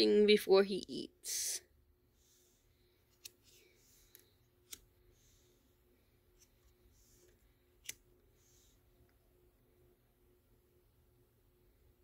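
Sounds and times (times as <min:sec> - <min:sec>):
cards sliding: 0:02.2 - 0:05.6, 0:06.3 - 0:08.8.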